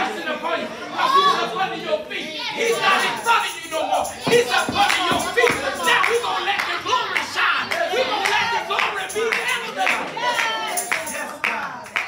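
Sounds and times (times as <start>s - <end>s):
voices calling out: 0.0s - 11.9s
congregation clapping: 2.7s - 12.0s.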